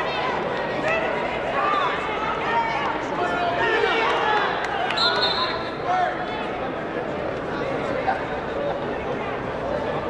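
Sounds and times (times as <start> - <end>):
crowd shouting and talking: 0.0 - 10.0
referee's whistle blast: 5.0 - 5.8.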